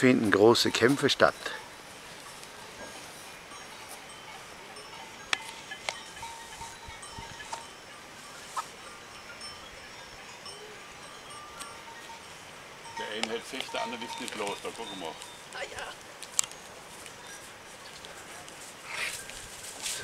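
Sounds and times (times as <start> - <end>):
faint bell-like ringing: 0.0 - 20.0
goat horns clacking: 0.0 - 20.0.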